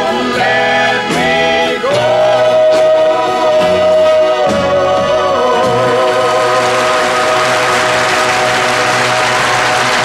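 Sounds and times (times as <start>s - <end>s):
audience applause: 5.8s - 10.0s.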